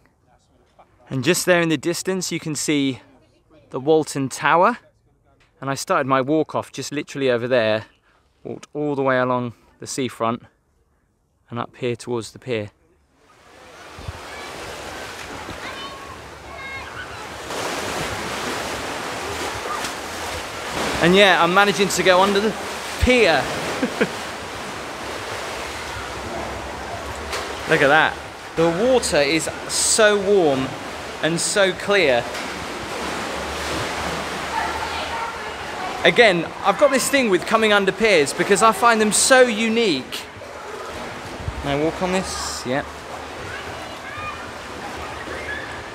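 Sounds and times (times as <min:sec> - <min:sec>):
small waves washing onto beach: 0:13.2 - 0:45.9
seawater splashing around feet: 0:13.3 - 0:45.9.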